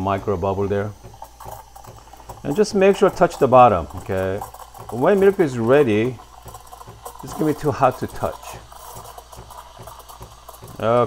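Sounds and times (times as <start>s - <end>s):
steam wand hissing in milk: 0.0s - 11.0s.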